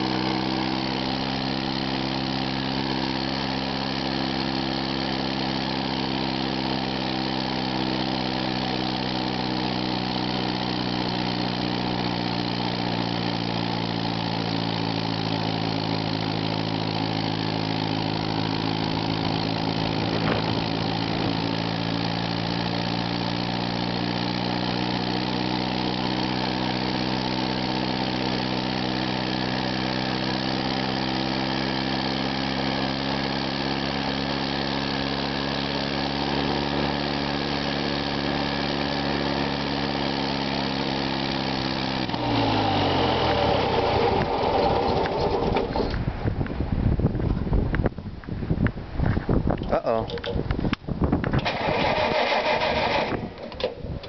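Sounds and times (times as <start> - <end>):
tractor engine running: 0.0 - 48.0, 49.0 - 54.0.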